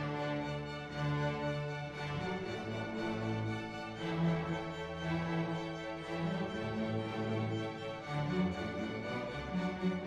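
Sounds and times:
string orchestra sustained notes: 0.0 - 10.0.

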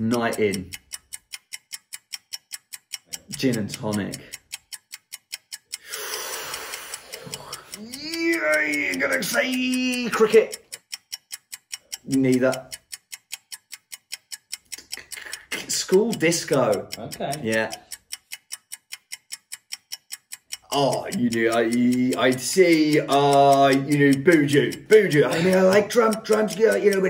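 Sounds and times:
clock-like ticking: 0.0 - 27.0.

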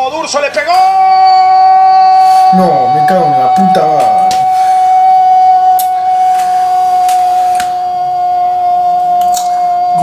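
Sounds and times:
high-pitched steady tone: 0.8 - 10.0.

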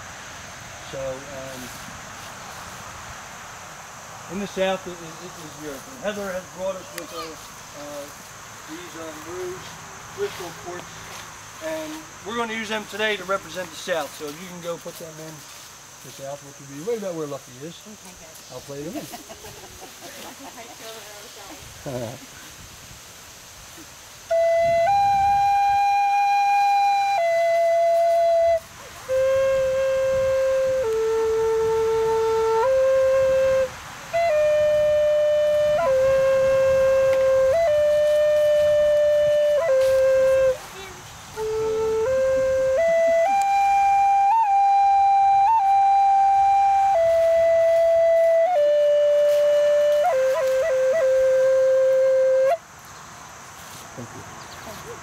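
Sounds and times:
solo flute melody: 24.3 - 52.6.

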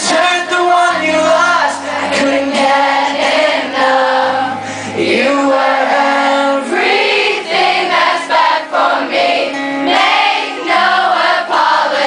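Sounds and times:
audience singing along: 0.0 - 12.0
strummed acoustic guitar: 0.0 - 12.0.

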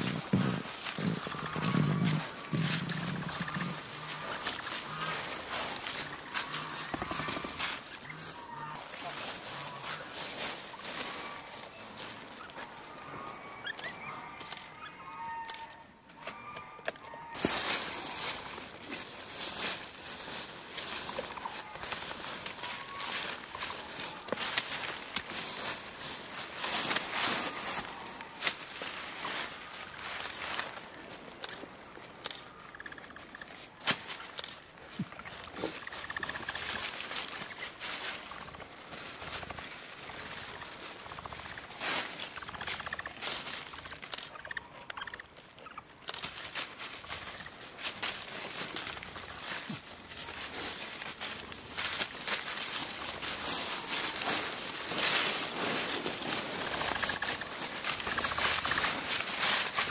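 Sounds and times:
dry leaves crunching underfoot: 0.0 - 59.9
twigs dragged through leaves: 0.0 - 59.9.

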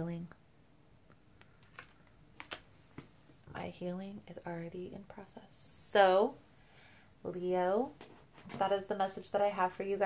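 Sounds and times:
cards clicking and tapping: 1.4 - 3.1.

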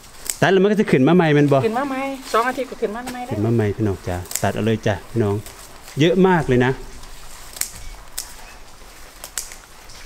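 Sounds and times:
scissors snipping stems: 0.0 - 0.5, 4.0 - 10.0.

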